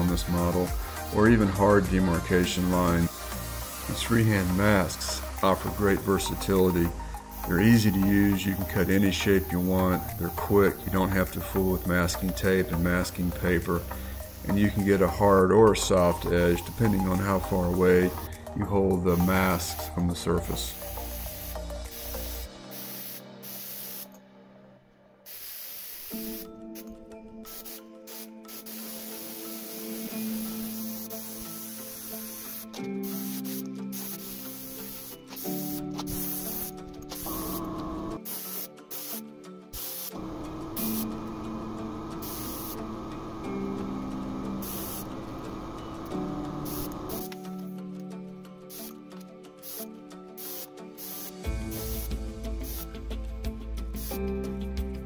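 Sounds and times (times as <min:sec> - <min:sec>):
spray gun air hiss: 0:00.0 - 0:15.1, 0:16.0 - 0:24.2, 0:25.2 - 0:47.5, 0:48.7 - 0:49.0, 0:49.6 - 0:53.2, 0:53.8 - 0:54.3
background music with held tones: 0:00.0 - 0:55.0.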